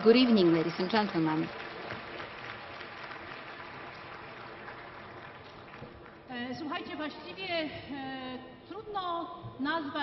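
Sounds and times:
audience applauding: 0.0s - 6.3s.

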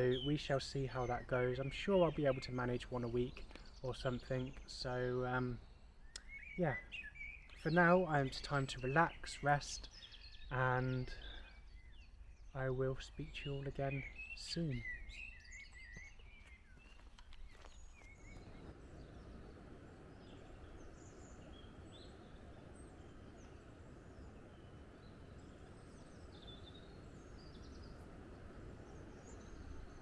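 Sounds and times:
low background noise: 0.0s - 30.0s
small birds chirping: 0.0s - 30.0s.

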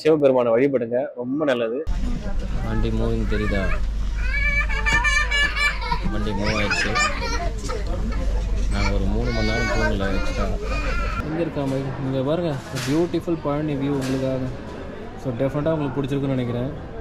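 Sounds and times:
train rumbling: 1.9s - 11.2s
children talking: 2.1s - 11.7s.

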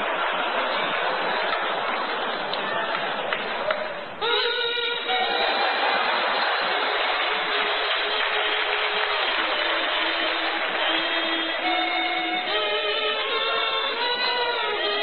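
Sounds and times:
noisy background: 0.0s - 15.0s
kazoo buzzy notes: 4.2s - 5.7s, 7.3s - 15.0s.

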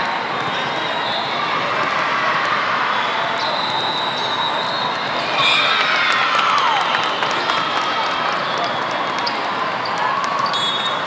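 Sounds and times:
crowd chatter and shouts: 0.0s - 11.0s.

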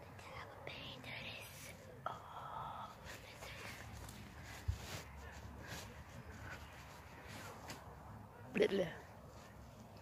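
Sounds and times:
boy whispering: 0.0s - 4.5s.

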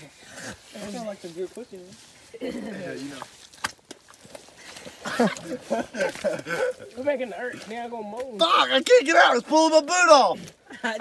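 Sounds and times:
man calling out: 8.3s - 10.4s.

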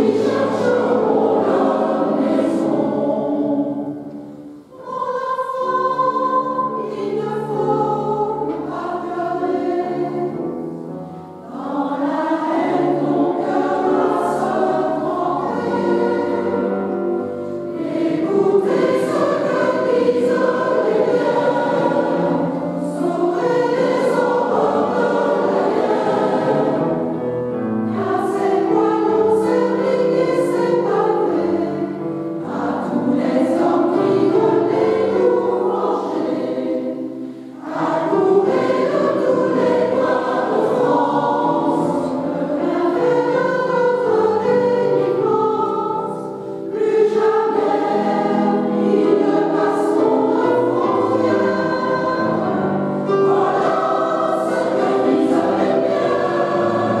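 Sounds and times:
mixed choir singing: 0.0s - 57.0s.

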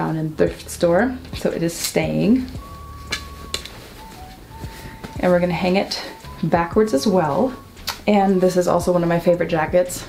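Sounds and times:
faint slow background music: 0.0s - 10.0s.

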